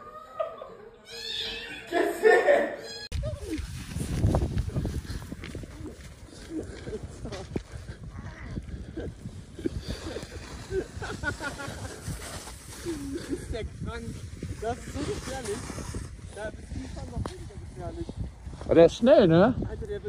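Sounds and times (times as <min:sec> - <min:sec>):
wind rumble on microphone: 0:03.1 - 0:20.0.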